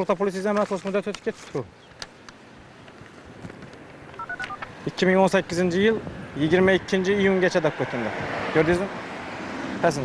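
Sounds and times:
faint street noise: 0:00.0 - 0:10.0
phone keypad dialing beeps: 0:04.2 - 0:04.6.

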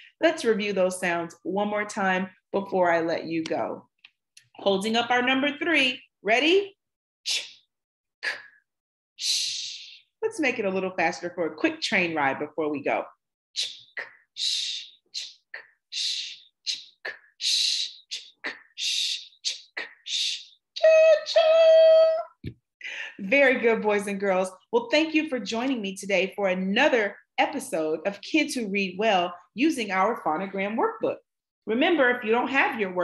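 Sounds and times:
woman making speech sounds: 0:00.2 - 0:07.6, 0:09.8 - 0:15.4, 0:16.0 - 0:22.4, 0:23.1 - 0:33.0.

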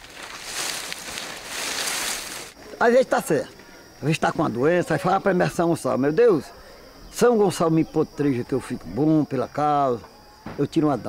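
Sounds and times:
dry palm fronds rustling: 0:00.0 - 0:02.6.

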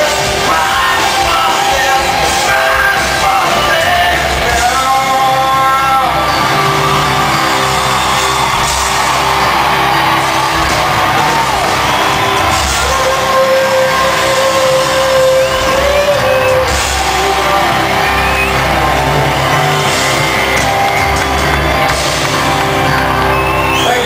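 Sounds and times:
rock band playing live: 0:00.0 - 0:24.0.

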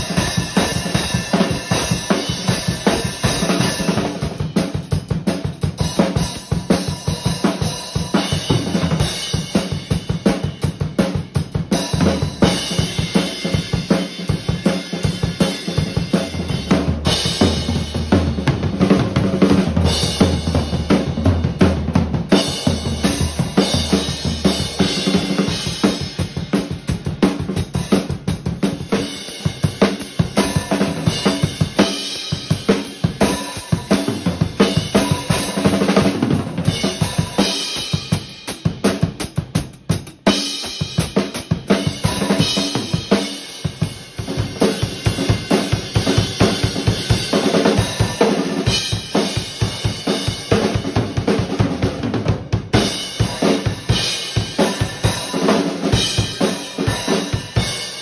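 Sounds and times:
rock drum groove: 0:00.0 - 0:58.0.

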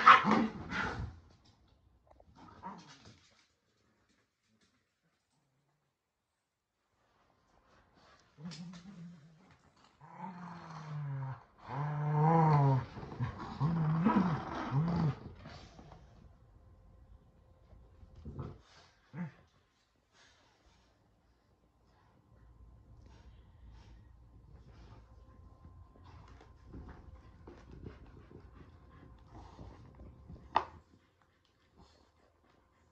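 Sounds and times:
dog play-growling: 0:08.0 - 0:16.2, 0:18.1 - 0:20.4, 0:26.0 - 0:32.6.

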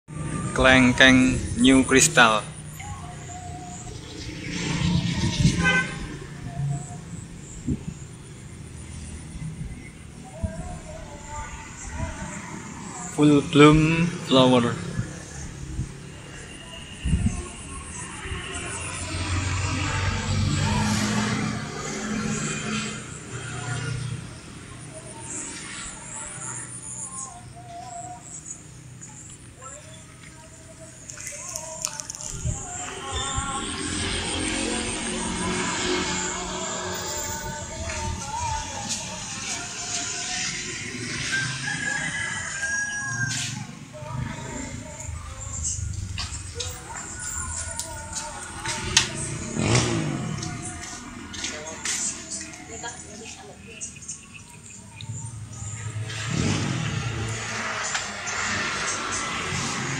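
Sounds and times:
vehicle engine driving past: 0:00.1 - 0:27.0, 0:31.2 - 0:59.9
rooster crowing: 0:40.8 - 0:45.3.

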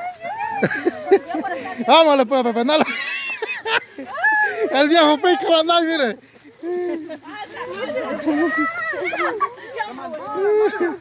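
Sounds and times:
people calling out and talking: 0:00.0 - 0:11.0.

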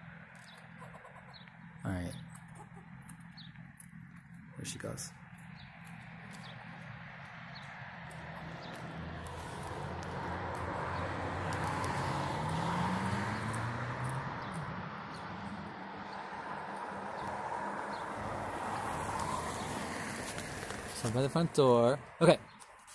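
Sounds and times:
vehicle passing: 0:00.0 - 0:22.2.

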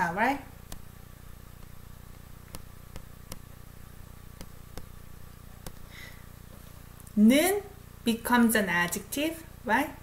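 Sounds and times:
low steady hum: 0:00.0 - 0:10.0
stylus tapping on drawing tablet: 0:02.5 - 0:03.5, 0:04.4 - 0:04.9.

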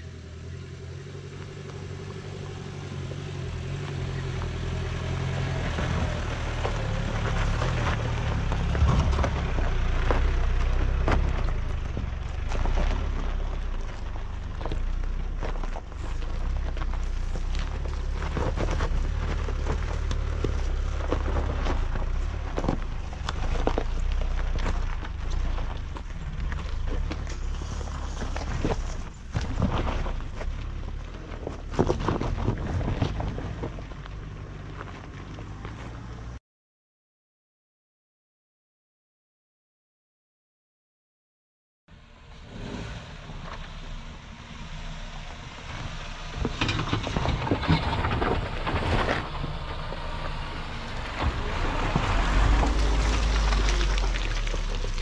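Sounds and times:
gravel crackling under tyres: 0:00.0 - 0:36.4, 0:41.9 - 0:55.0
vehicle engine at low revs: 0:00.0 - 0:36.4, 0:41.9 - 0:55.0.

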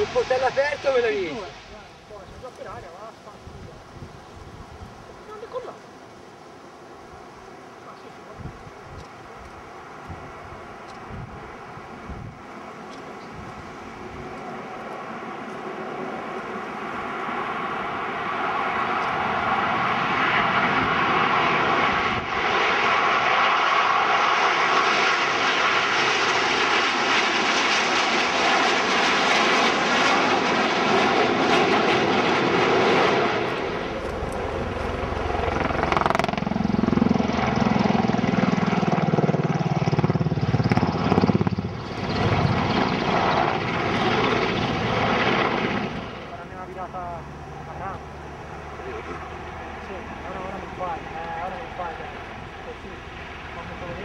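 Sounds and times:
jet engines passing overhead: 0:00.0 - 0:54.0
deep rumble: 0:32.1 - 0:54.0.

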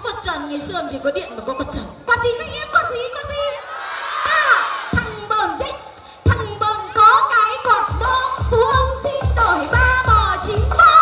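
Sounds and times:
person singing pop song: 0:04.5 - 0:11.0
backing track with steady beat: 0:07.7 - 0:11.0.

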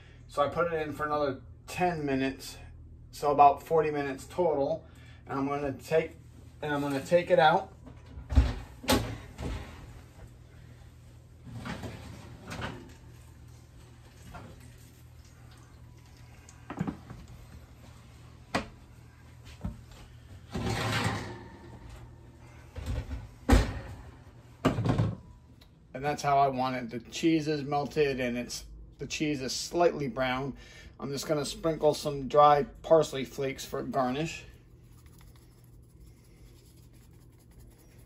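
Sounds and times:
oven door opening: 0:20.5 - 0:21.8.

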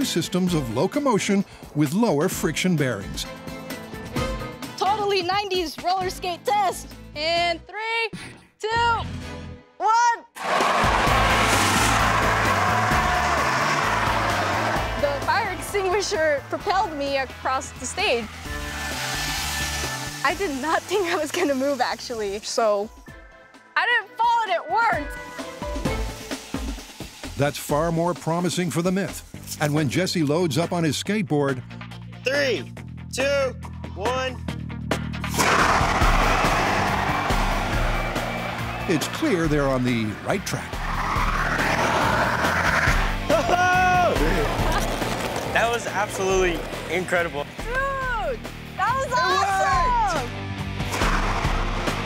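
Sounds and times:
fire extinguisher hissing: 0:17.8 - 0:22.5, 0:25.7 - 0:27.8.

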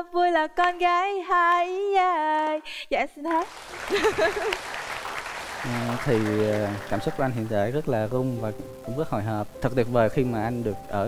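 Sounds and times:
studio audience applauding: 0:03.3 - 0:08.1.

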